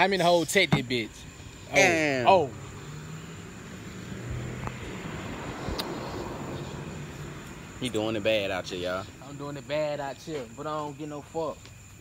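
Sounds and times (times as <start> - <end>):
passing engine drone: 1.9 - 8.4.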